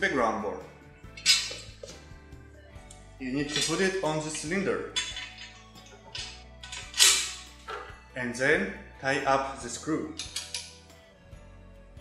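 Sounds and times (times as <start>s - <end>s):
background music: 0.0s - 12.0s
metal frame clinking and scraping: 1.1s - 2.0s, 3.4s - 7.9s, 10.1s - 10.8s.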